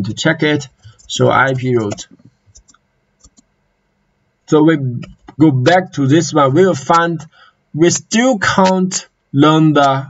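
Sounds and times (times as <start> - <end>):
faint keyboard clicks: 1.8 - 3.5, 5.0 - 5.4.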